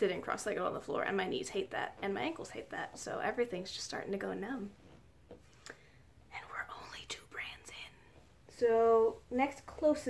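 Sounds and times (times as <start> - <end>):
woman whispering: 6.3 - 8.1.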